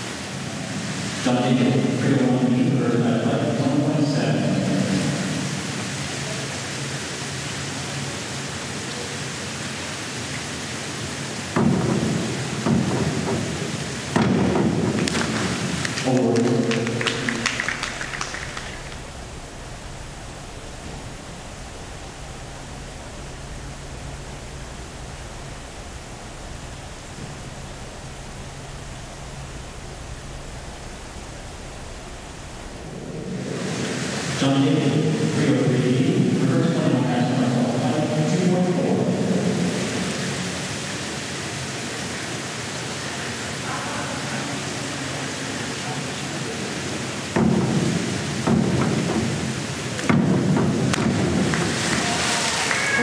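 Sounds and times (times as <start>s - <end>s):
hiss of hall noise: 0.0s - 53.0s
person's voice: 1.2s - 5.1s, 16.0s - 17.6s, 34.4s - 39.2s
diving board bangs: 11.5s - 25.1s, 47.2s - 52.3s
low hum: 11.7s - 41.0s
splash of diver entering water: 50.7s - 53.0s.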